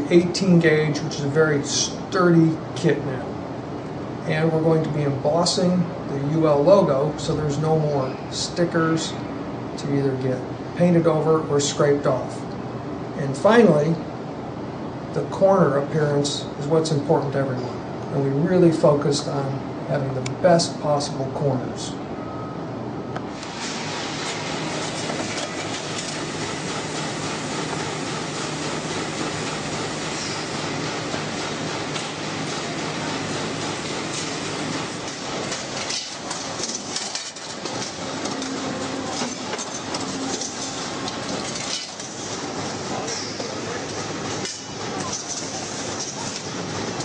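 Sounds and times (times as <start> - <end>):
machinery running: 23.3 - 47.0
steel lengths clattering: 35.0 - 43.4.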